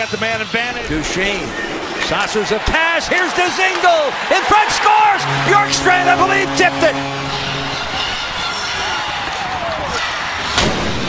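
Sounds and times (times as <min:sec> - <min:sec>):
arena crowd cheering: 0:01.0 - 0:10.6
steady low tone: 0:05.2 - 0:08.8.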